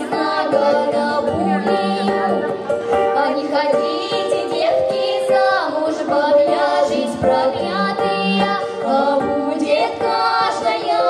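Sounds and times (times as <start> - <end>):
female folk choir singing: 0.0 - 11.0.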